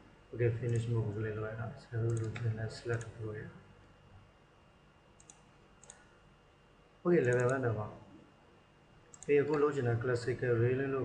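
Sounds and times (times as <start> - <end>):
computer mouse clicks: 2.1 - 3.1, 5.2 - 6.1, 7.2 - 7.6, 9.1 - 9.6.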